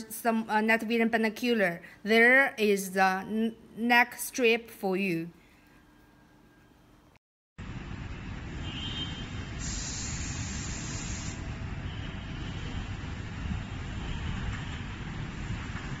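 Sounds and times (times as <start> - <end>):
steady low city rumble: 6.8 - 16.0
brief hiss: 8.9 - 11.6.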